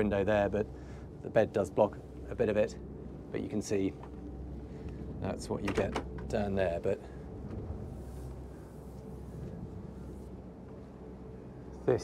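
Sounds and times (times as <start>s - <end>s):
boat diesel engines droning: 0.0s - 12.0s.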